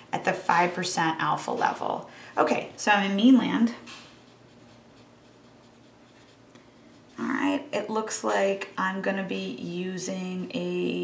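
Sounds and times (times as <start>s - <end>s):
pen scratching on paper: 4.1s - 7.6s.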